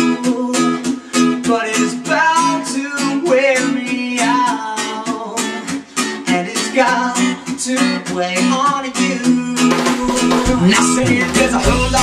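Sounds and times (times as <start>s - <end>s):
man singing: 0.0s - 12.0s
strummed acoustic guitar: 0.0s - 12.0s
electric bass: 10.0s - 12.0s.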